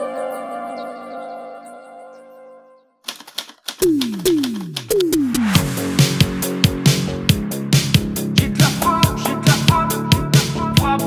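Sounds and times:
typewriter keystrokes: 3.0s - 5.4s.

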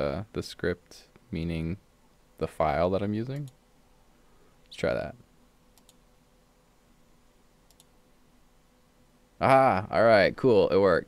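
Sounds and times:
faint steady hum: 0.0s - 11.0s
computer mouse clicks: 3.4s - 3.6s, 5.7s - 6.0s, 7.6s - 8.0s.

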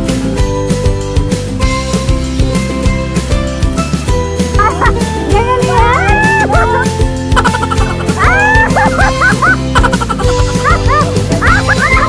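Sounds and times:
music with bass and beat: 0.0s - 12.0s.

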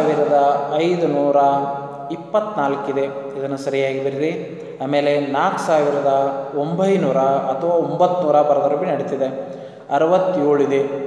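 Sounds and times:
man speaking in sing-song way: 3.7s - 9.3s.

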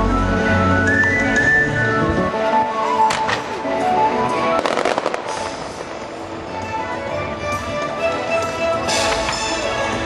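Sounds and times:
orchestral music from loudspeakers: 0.0s - 10.0s
fireworks crackling: 2.9s - 6.8s.

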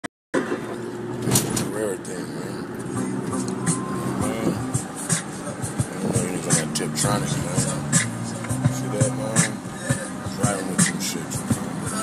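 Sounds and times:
car cabin engine rumble: 0.4s - 12.0s
man's voice: 1.6s - 12.0s.

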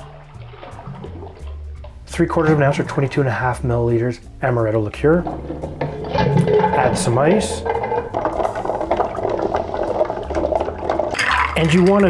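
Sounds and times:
ice cubes clinking in glass: 11.1s - 12.0s.

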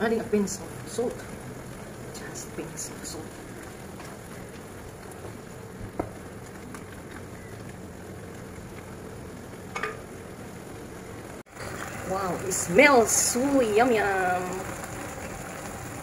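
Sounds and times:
apples sizzling in a pan: 0.0s - 16.0s.

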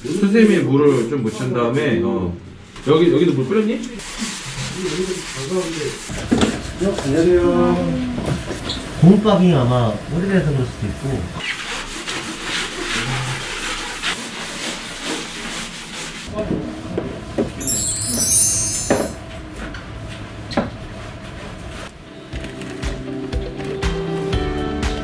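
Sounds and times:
scrubbing strokes: 4.0s - 6.1s, 11.4s - 16.3s
twinkling sparkle sound effect: 17.6s - 19.2s
background music: 22.1s - 25.0s.

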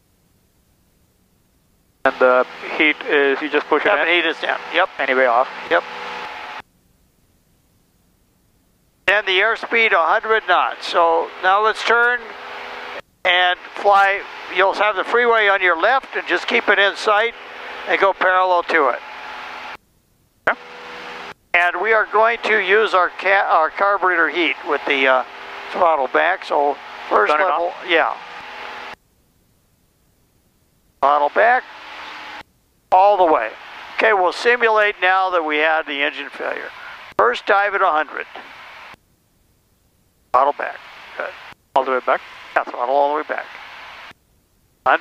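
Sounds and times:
cabin noise hiss over intercom: 2.1s - 6.7s, 40.3s - 44.2s.

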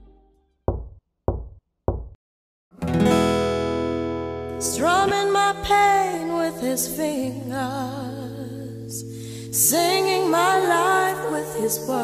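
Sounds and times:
dull knocks: 0.7s - 2.2s
guitar chord ringing: 2.8s - 4.8s.

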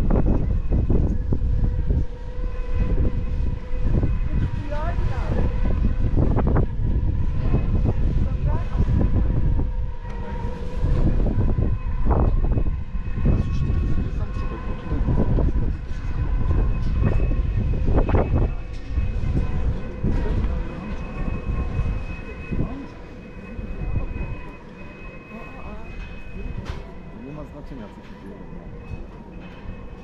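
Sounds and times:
hum of held high tones: 0.0s - 30.0s
strong wind buffeting microphone: 0.0s - 30.0s.

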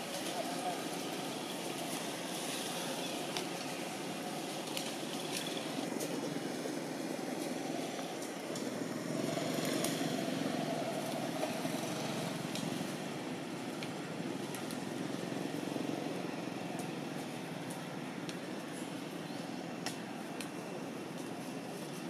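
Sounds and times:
motorbike passing: 0.0s - 17.6s
outdoor background noise: 0.0s - 22.0s.

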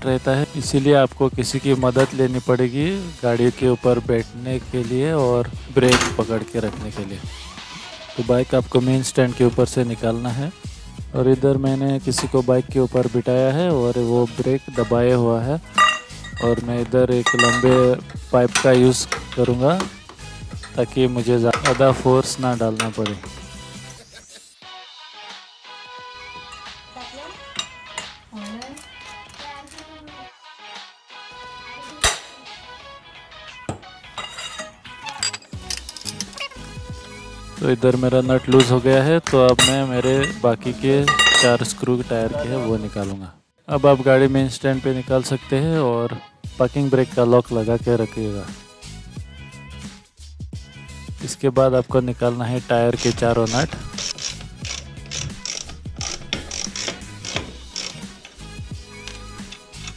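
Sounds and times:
ratchet wrench clicking: 53.0s - 59.9s.

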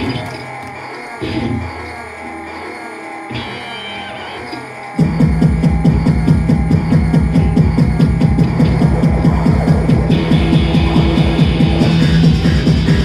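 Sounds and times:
live electro-punk band: 3.3s - 13.0s.

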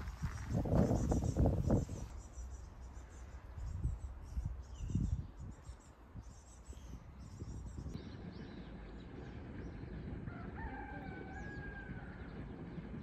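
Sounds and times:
small birds chirping: 0.0s - 10.2s.

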